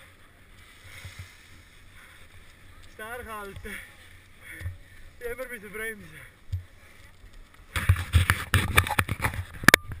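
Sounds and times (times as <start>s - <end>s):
ski gear scraping and knocking: 7.6s - 10.0s.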